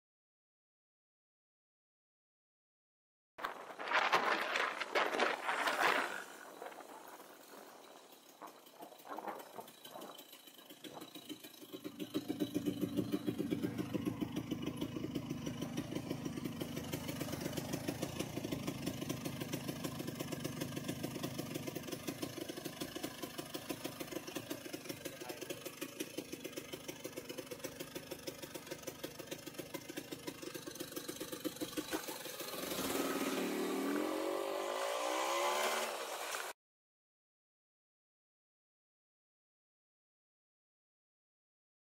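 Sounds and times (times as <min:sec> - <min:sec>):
scooter engine idling and revving: 0:05.7 - 0:36.6.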